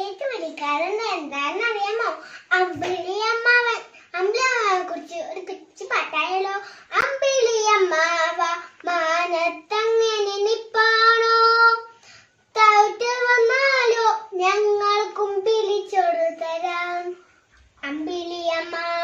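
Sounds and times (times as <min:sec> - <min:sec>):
girl singing unaccompanied: 0:00.0 - 0:19.0.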